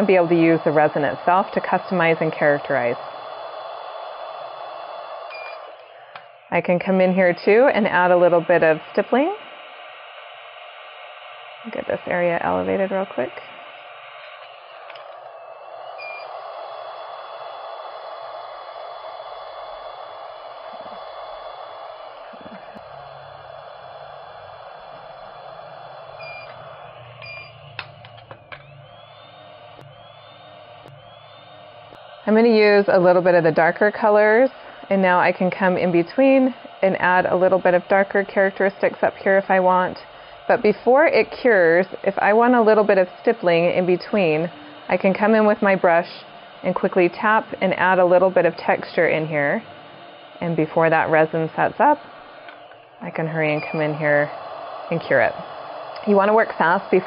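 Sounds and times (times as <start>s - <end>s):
curing light hissing: 0.0s - 57.0s
short beeps: 5.3s - 5.7s, 26.2s - 26.6s, 27.2s - 27.7s, 53.5s - 54.0s
sharp clicks: 23.6s - 32.5s, 53.5s - 57.0s.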